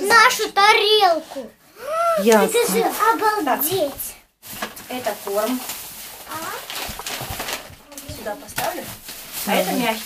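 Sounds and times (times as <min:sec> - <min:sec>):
plastic bag rustling: 0:02.3 - 0:10.0.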